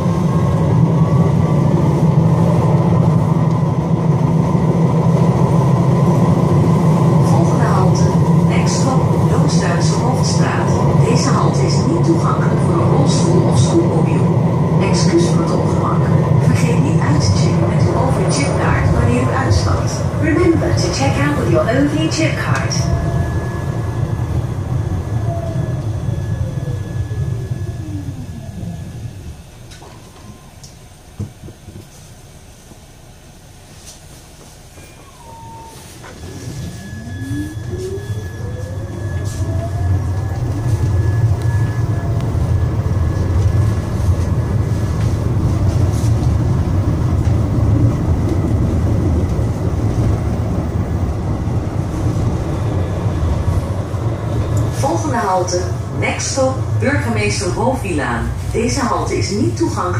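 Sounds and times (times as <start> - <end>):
tram traction drive whine: 0.0 - 59.9
wheels rumbling on rails: 0.0 - 59.9
click: 29.7 - 30.8.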